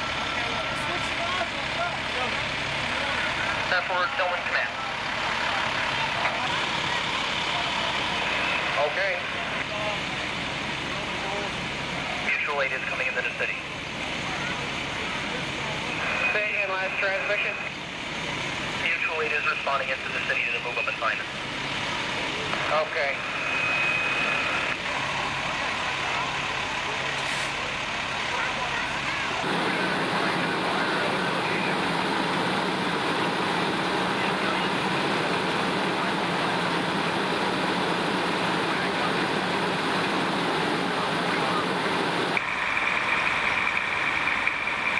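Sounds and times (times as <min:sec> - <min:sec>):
fire engines rumbling: 0:00.0 - 0:44.9
street noise: 0:00.0 - 0:44.9.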